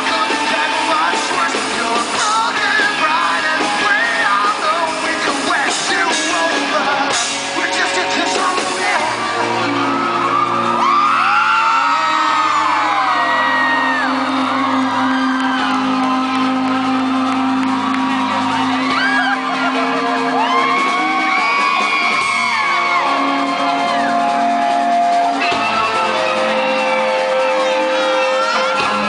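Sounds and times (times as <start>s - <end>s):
crowd screaming and whooping: 0.0s - 29.0s
live rock band playing: 0.0s - 29.0s.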